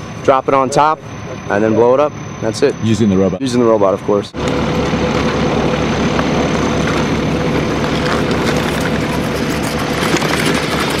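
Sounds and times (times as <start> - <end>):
heavy vehicle engine idling: 0.0 - 11.0.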